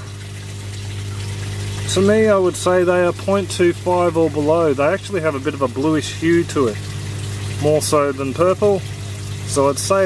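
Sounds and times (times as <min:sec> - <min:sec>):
pump electric hum: 0:00.0 - 0:10.0.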